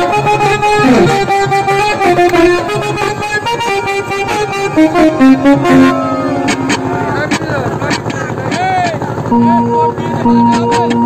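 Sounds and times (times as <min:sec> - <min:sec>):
motorboat engine running: 0:00.0 - 0:11.0
voices calling out: 0:00.3 - 0:11.0.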